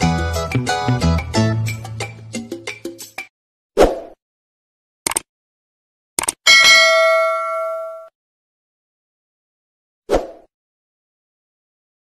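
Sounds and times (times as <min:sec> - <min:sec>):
short clicks: 0:05.0 - 0:05.3, 0:06.2 - 0:06.4
bell ding: 0:06.5 - 0:08.1.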